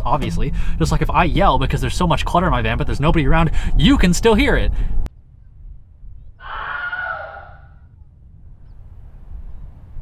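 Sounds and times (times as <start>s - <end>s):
low steady rumble: 0.0s - 6.4s, 7.6s - 10.0s
distant yell: 6.4s - 7.9s.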